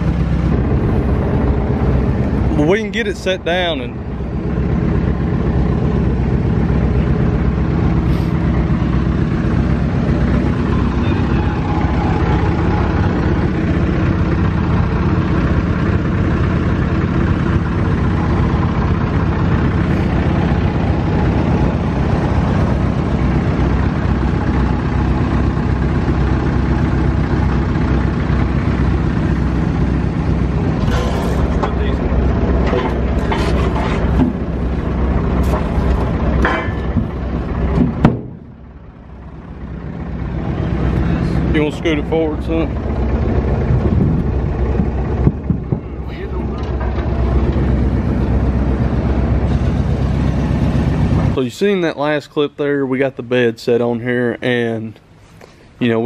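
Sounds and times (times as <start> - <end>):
vehicle engine idling: 0.0 - 56.0
sharp knocks: 36.4 - 38.5.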